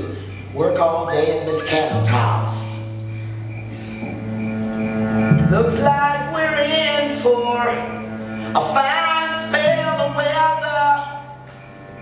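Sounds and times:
held low bass note: 0:01.9 - 0:08.8.

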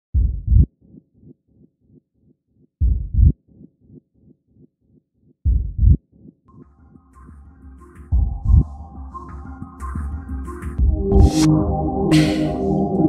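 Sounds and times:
heartbeat double thump: 0:00.1 - 0:00.7, 0:02.8 - 0:03.4, 0:05.5 - 0:06.0.

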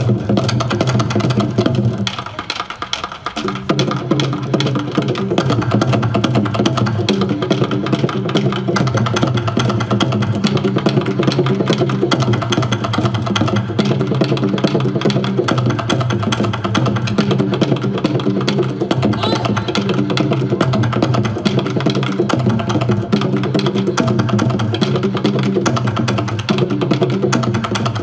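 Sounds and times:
barrel drums beaten fast: 0:00.0 - 0:28.0.

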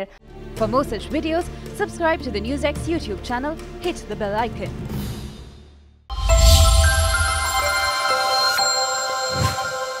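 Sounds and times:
deep bass hit: 0:06.1 - 0:07.9
electronic music sting: 0:06.1 - 0:10.0.

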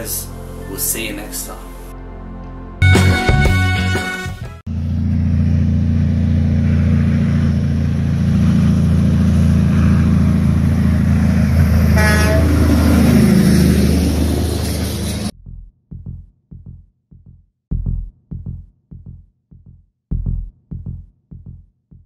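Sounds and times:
truck horn toot: 0:02.8 - 0:04.6, 0:11.8 - 0:13.0
diesel truck engine rumble: 0:04.6 - 0:15.3.

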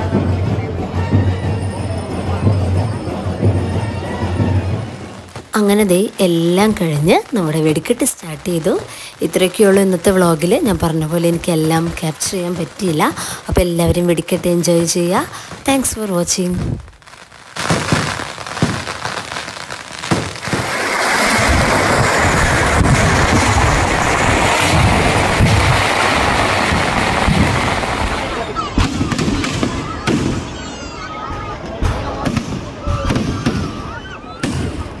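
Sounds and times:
firecrackers crackling: 0:00.0 - 0:35.0
firework bangs: 0:00.0 - 0:35.0.

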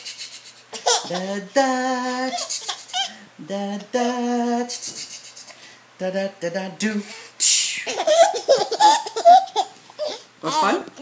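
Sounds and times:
baby laughing: 0:00.7 - 0:01.4, 0:02.2 - 0:03.2, 0:07.8 - 0:10.3.

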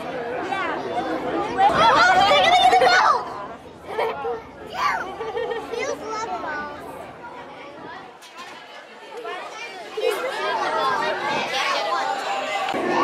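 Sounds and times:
chatter of children and adults: 0:00.0 - 0:13.0.

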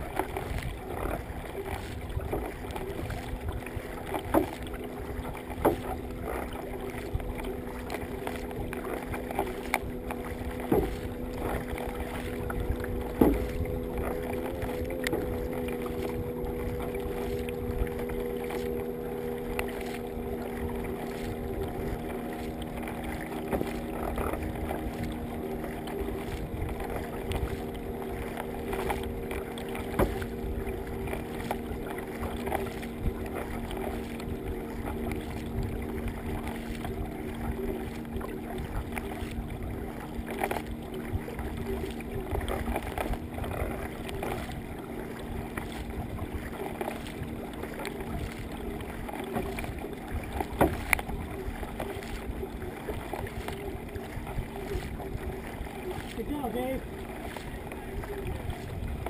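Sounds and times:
water splashing against kayak hull: 0:00.0 - 0:59.0.

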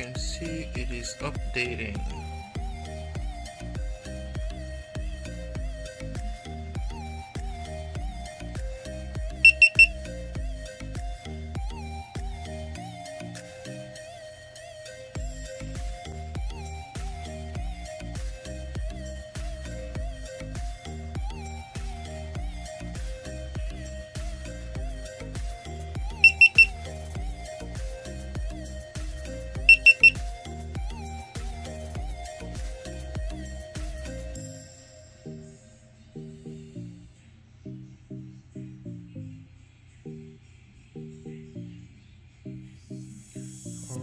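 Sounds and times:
background music: 0:00.0 - 0:44.0
camera beeps: 0:09.4 - 0:10.0, 0:26.2 - 0:26.8, 0:29.7 - 0:30.2.

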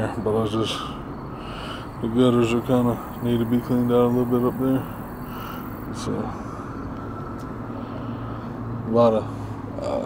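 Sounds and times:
faint outdoor noise: 0:00.0 - 0:10.0.

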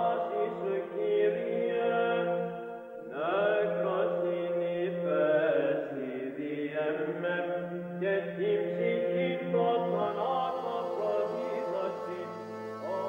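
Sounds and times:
low vocal drone: 0:00.0 - 0:13.0
solo voice chanting: 0:00.0 - 0:13.0.

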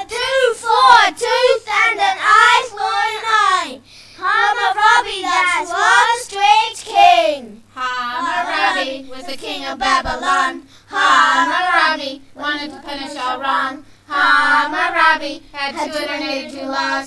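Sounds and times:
children singing: 0:00.0 - 0:03.6, 0:04.3 - 0:07.2, 0:07.8 - 0:17.0.

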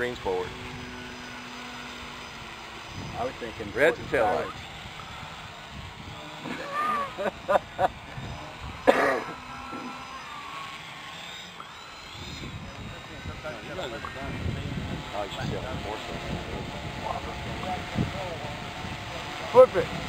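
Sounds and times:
drone propellers whirring: 0:00.0 - 0:20.0
person laughing: 0:06.4 - 0:08.1.

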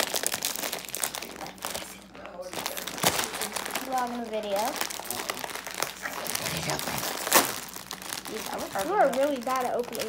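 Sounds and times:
plastic packet crinkling: 0:00.0 - 0:10.0.

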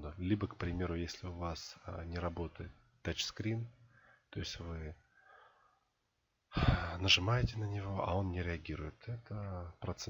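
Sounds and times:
man speaking: 0:00.0 - 0:05.1, 0:06.6 - 0:10.0
man breathing softly: 0:03.8 - 0:04.4, 0:05.0 - 0:07.0.

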